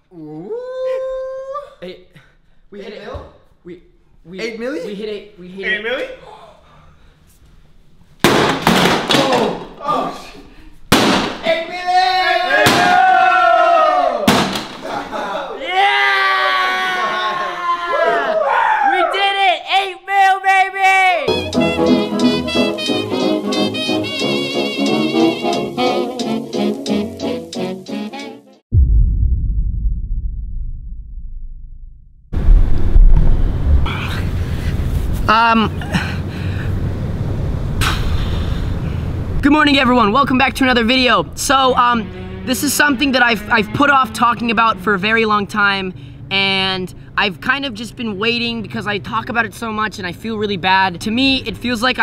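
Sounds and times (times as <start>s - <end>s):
person screaming: 0.1s - 1.8s, 15.6s - 19.4s
objects knocked over and slammed: 8.2s - 9.6s
music track: 21.3s - 28.6s
wind rumbling on microphone: 32.3s - 35.2s.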